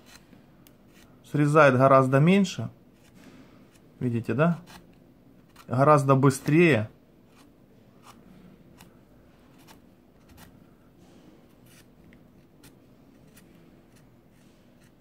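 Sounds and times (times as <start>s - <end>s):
peeler scraping avocado skin: 0.0s - 1.2s, 4.5s - 5.8s, 7.3s - 10.6s, 11.5s - 15.0s.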